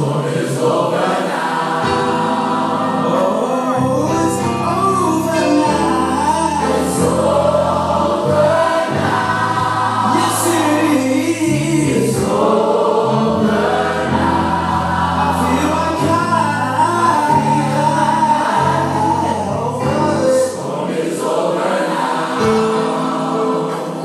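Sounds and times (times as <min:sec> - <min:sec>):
gospel choir singing: 0:00.0 - 0:24.0.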